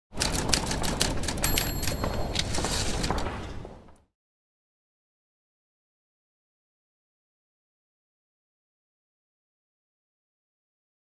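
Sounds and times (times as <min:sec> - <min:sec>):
typewriter keys clacking: 0:00.1 - 0:03.4
typewriter bell ding: 0:00.3 - 0:03.3.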